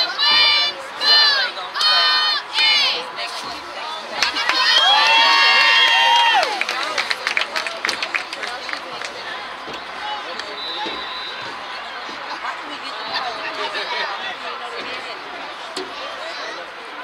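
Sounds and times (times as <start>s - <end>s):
young voices chanting a cheer: 0.0s - 17.0s
people clapping: 4.1s - 16.0s
long held shout: 4.6s - 6.6s.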